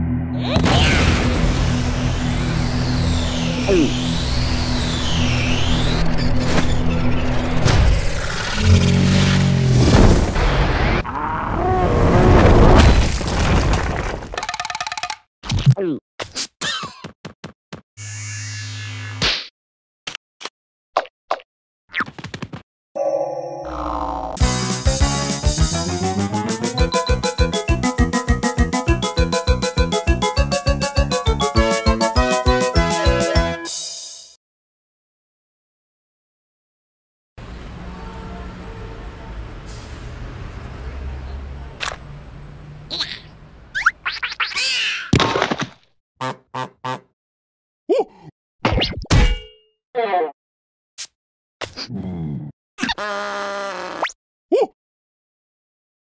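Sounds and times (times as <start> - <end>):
electronic cartoon drone: 1.8 - 6.1.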